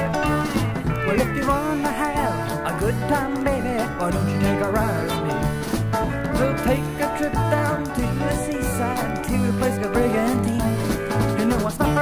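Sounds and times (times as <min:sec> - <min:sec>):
bass line: 0:00.0 - 0:12.0
drum hits: 0:00.0 - 0:12.0.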